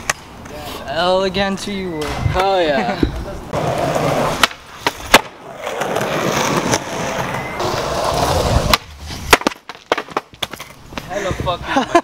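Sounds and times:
skateboard wheels rolling: 1.5s - 11.6s
skateboard slamming on concrete: 3.6s - 10.8s
skateboard clacking on ground: 3.6s - 11.3s.

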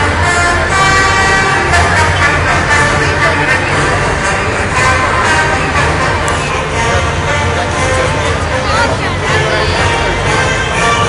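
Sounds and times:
heavy truck engine droning: 0.0s - 11.0s
steady horn-like tone: 0.0s - 11.0s.

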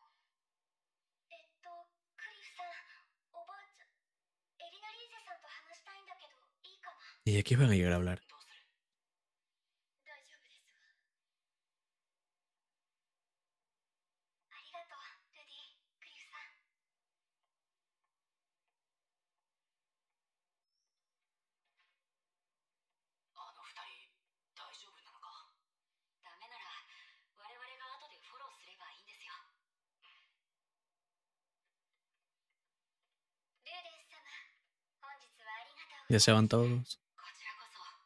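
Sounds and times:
faint cartoon character speaking: 7.3s - 8.2s, 36.1s - 37.0s.

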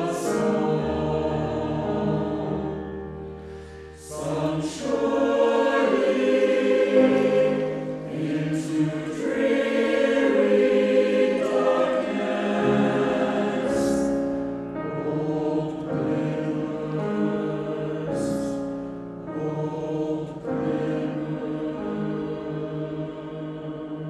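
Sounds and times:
mixed choir singing: 0.0s - 24.0s.

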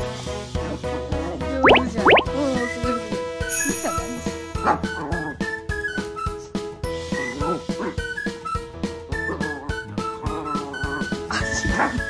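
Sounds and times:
dog yelping: 4.7s - 12.0s
dog whining: 5.0s - 11.3s.

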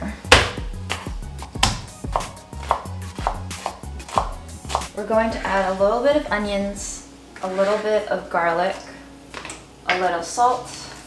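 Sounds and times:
knife chopping on wooden board: 0.3s - 4.9s.

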